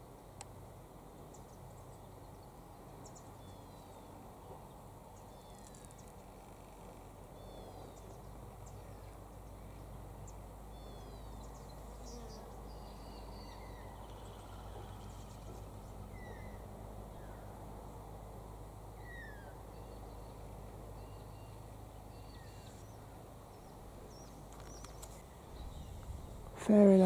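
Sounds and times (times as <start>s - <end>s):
low outdoor rumble: 0.0s - 27.0s
birds chirping: 4.7s - 17.6s, 19.0s - 27.0s.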